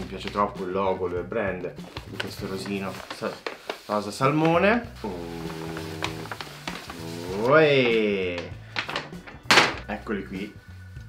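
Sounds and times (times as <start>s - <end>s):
paper bag rustling: 0.0s - 10.5s
background music: 0.0s - 11.0s.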